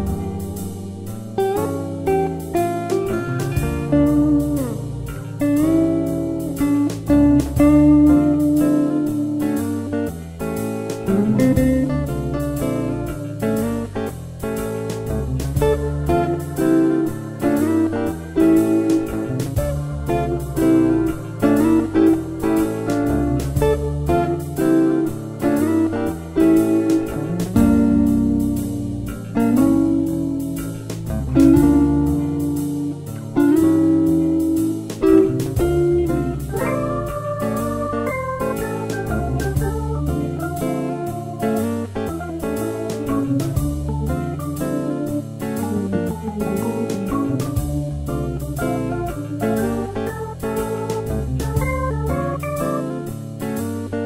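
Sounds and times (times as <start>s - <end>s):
guitar-led blues band music: 0.0s - 54.0s.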